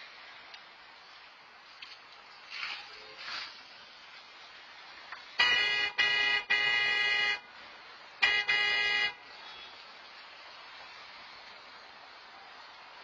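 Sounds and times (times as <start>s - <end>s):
car horn honking: 5.4s - 7.4s, 8.2s - 9.8s.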